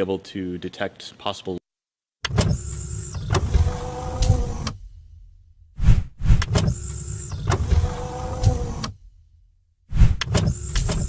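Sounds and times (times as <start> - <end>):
mechanical transition sound effect: 5.8 - 9.0.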